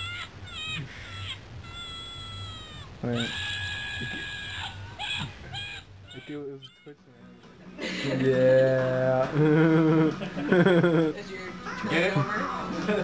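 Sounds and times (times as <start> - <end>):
animal calls from phone speaker: 0.0 - 6.9.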